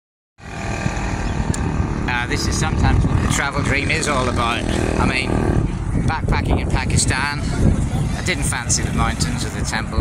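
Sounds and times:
vehicle engines on busy road: 0.4 - 10.0
wind on microphone: 0.4 - 10.0.

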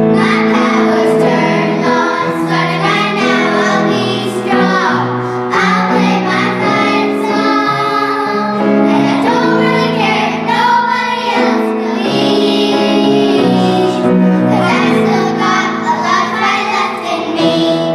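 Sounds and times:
girls singing a pop song: 0.0 - 17.9
instrumental accompaniment: 0.0 - 17.9.

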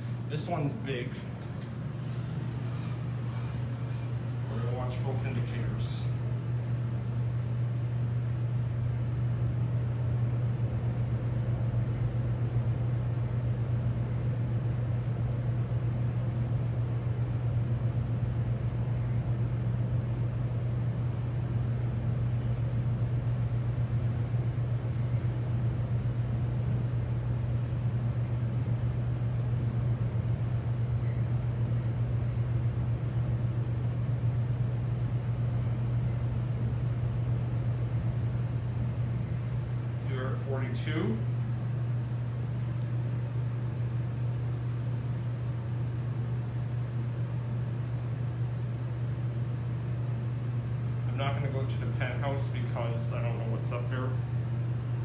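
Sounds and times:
elevator car rumbling: 0.0 - 5.8
ventilation fan humming: 0.0 - 55.0.

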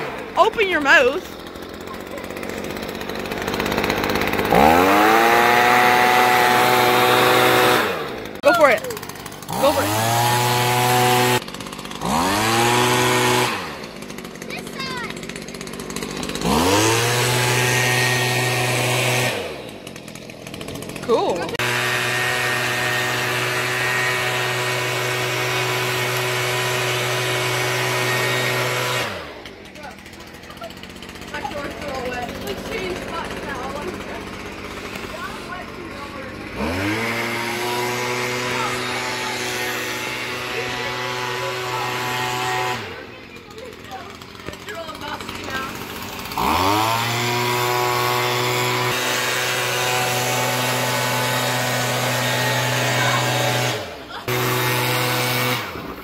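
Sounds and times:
leaf blower engine revving: 0.0 - 56.0.

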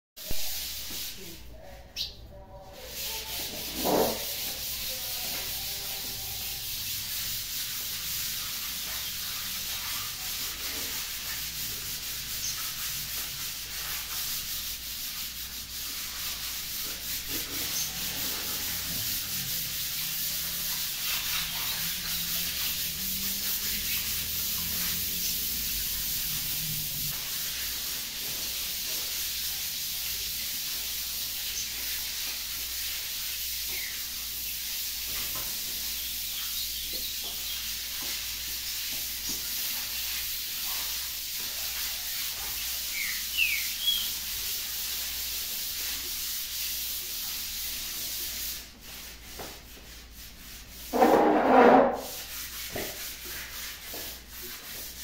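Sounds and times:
sandpaper sanding walls: 0.2 - 1.7, 2.5 - 55.0.

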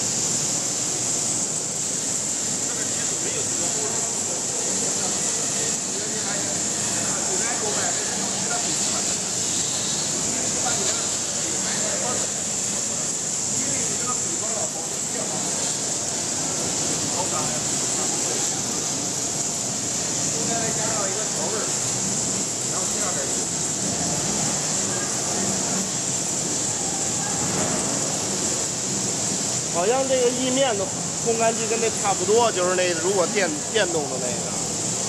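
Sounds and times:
dryer machine running with hiss: 0.0 - 35.0.

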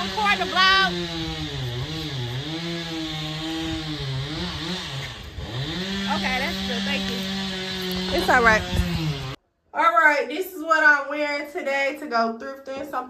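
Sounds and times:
small engine running: 0.0 - 9.4.

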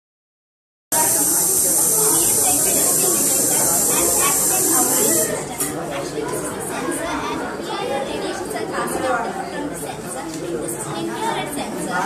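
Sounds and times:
chatter of many voices: 0.9 - 12.0
steady high hiss: 1.0 - 5.4.

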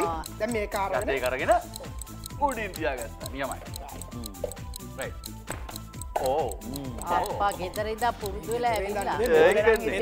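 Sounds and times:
background music: 0.0 - 10.0
fast even ticking: 0.0 - 10.0.

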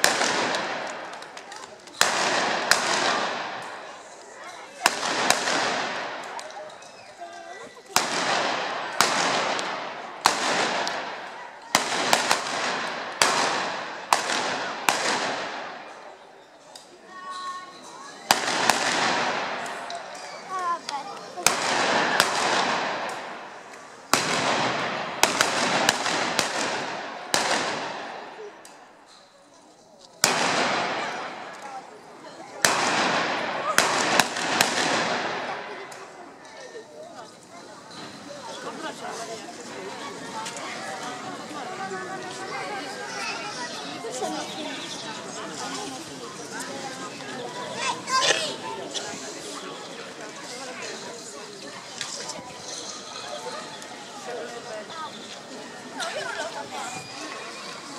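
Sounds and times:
shotgun shots echoing: 0.0 - 1.1, 2.0 - 3.9, 4.8 - 6.4, 8.0 - 15.9, 18.3 - 19.8, 21.4 - 23.5, 24.1 - 28.5, 30.2 - 31.5, 32.6 - 35.9.

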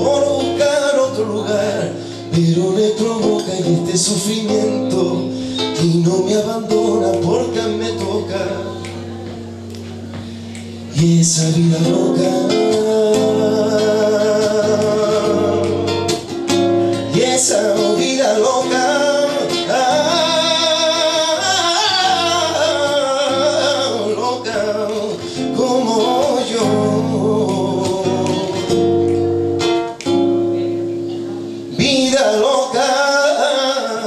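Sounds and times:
nylon-string guitar: 0.0 - 34.0
man singing long held notes: 17.0 - 28.8.

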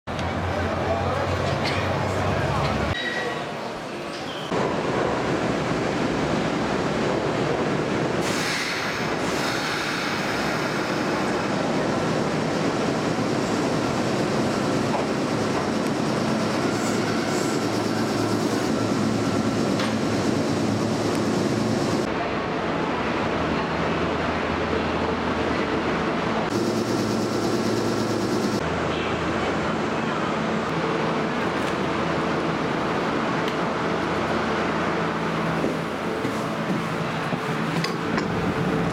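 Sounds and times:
train rumbling through station: 0.1 - 38.9.

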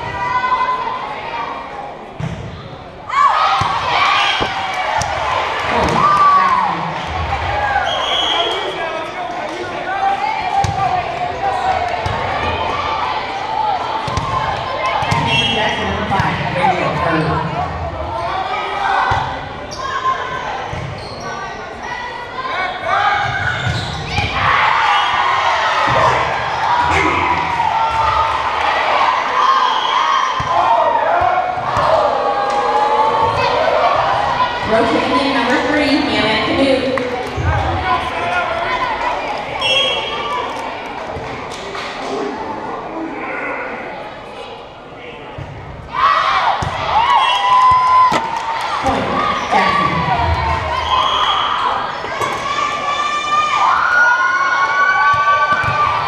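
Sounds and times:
spectators talking and shouting: 0.0 - 56.0
players calling out: 2.9 - 41.4.

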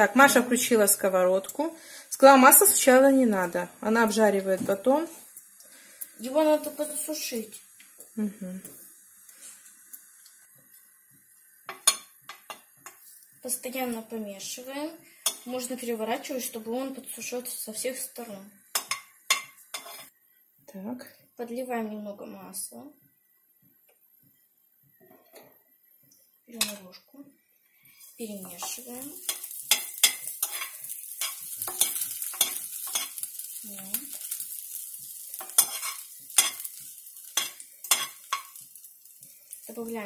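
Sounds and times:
metal spoon scraping a pan: 11.7 - 13.3, 15.2 - 15.8, 18.7 - 20.2, 27.9 - 38.7.

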